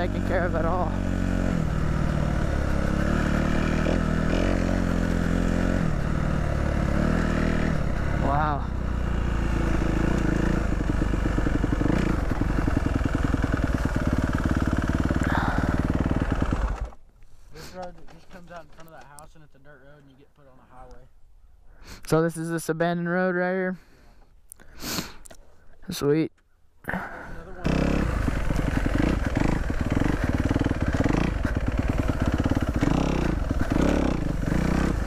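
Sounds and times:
dirt bike engine revving: 0.0 - 17.0, 26.9 - 35.0.

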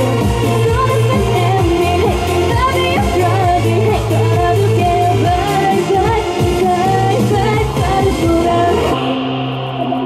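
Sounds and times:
pop music with singing: 0.0 - 10.0.

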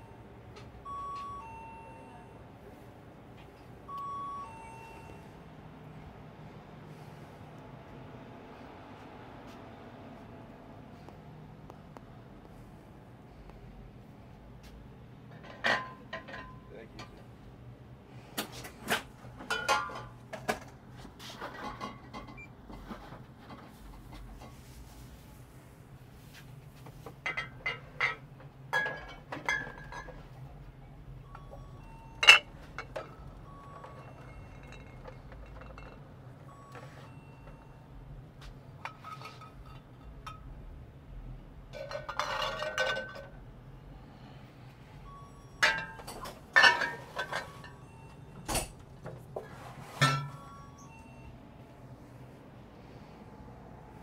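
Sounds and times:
glass bottles clinking: 19.4 - 20.1, 27.2 - 30.3, 31.2 - 37.6, 41.8 - 43.4, 45.5 - 48.8, 50.0 - 51.1.

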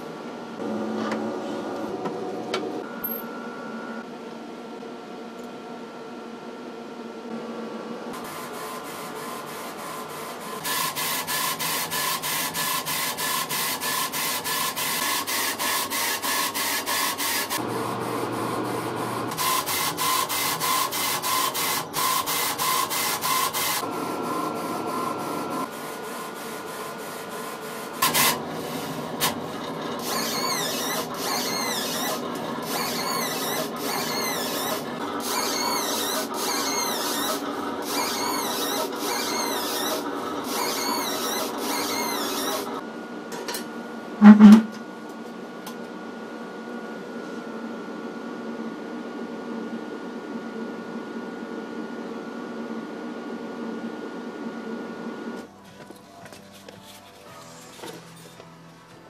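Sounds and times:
steady machine hum: 17.6 - 58.9.

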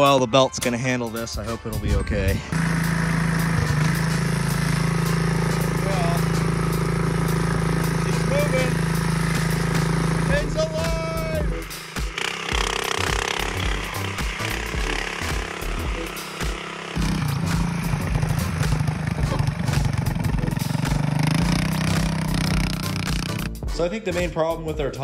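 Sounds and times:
small atv engine running: 1.9 - 23.6.

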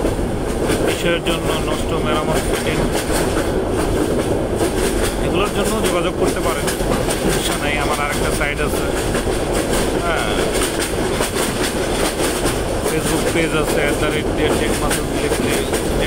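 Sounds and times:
train rumble inside carriage: 0.0 - 16.0
wheels clacking over rail joints: 0.0 - 16.0.

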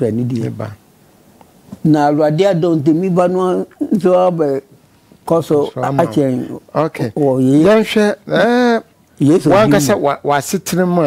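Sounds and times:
man speaking: 0.0 - 0.8, 1.8 - 4.7, 5.3 - 11.0.

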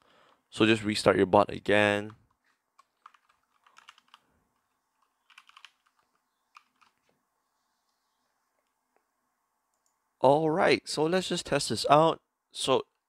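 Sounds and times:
keyboard typing: 2.8 - 4.2, 4.9 - 7.1.

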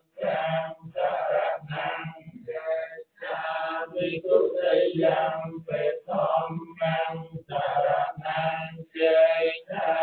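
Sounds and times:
men chanting: 0.0 - 10.0.

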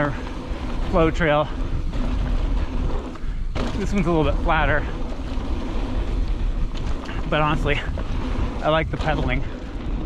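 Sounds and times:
bike tyre and trail noise: 0.0 - 10.0
wind buffeting microphone: 0.0 - 10.0.

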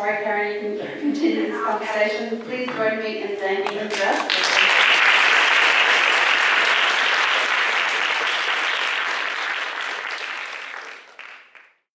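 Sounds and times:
people applauding: 3.8 - 11.9.

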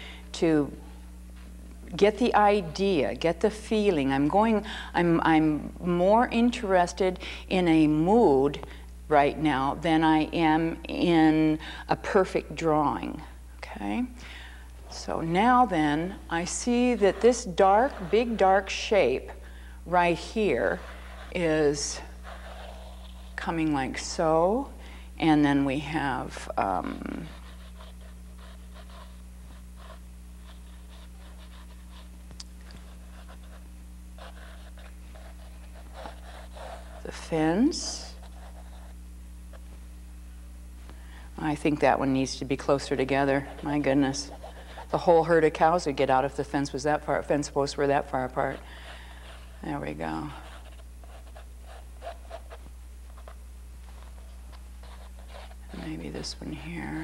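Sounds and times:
steady electrical hum: 0.0 - 57.0
drawing stick scratching on canvas: 15.6 - 19.3, 20.1 - 24.2, 26.6 - 32.1, 34.2 - 39.0, 42.8 - 45.9, 48.0 - 56.3.

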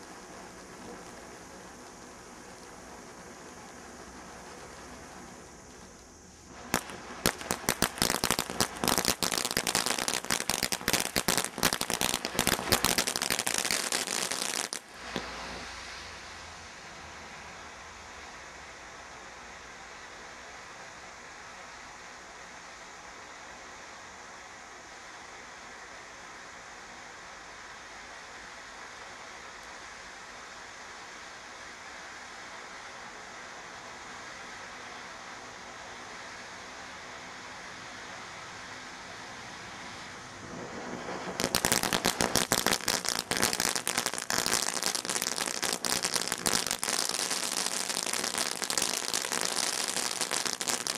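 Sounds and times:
firework fountain crackling: 0.0 - 50.9
firework fountain hissing: 0.0 - 50.9.

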